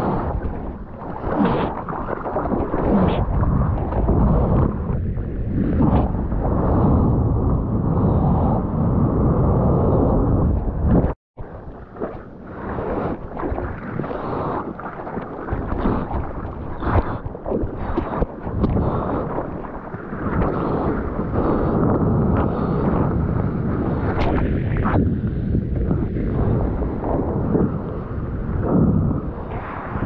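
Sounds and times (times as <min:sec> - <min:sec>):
seawater rushing and splashing: 0:00.0 - 0:09.0, 0:11.0 - 0:30.0
wind buffeting microphone: 0:00.0 - 0:30.0.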